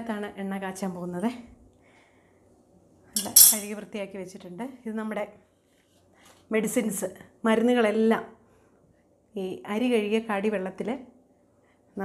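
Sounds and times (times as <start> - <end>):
woman talking: 0.0 - 1.5, 6.5 - 8.3, 9.4 - 11.1.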